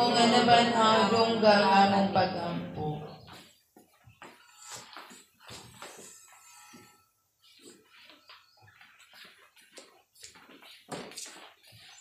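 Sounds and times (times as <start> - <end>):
footsteps on tiled floor: 3.0 - 12.0.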